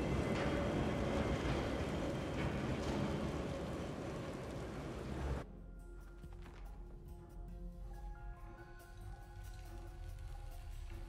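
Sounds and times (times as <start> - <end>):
rain on street: 0.0 - 5.4.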